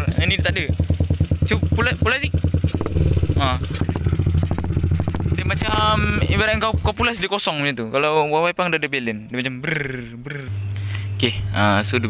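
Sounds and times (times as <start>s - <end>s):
motorcycle engine idling: 0.0s - 7.3s.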